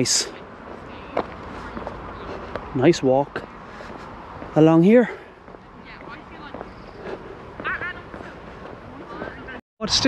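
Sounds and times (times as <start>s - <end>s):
faint distant voices: 0.0s - 9.6s.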